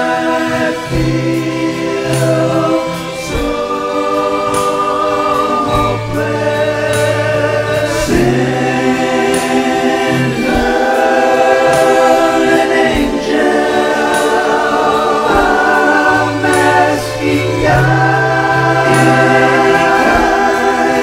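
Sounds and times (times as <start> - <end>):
slow choral song: 0.0 - 21.0.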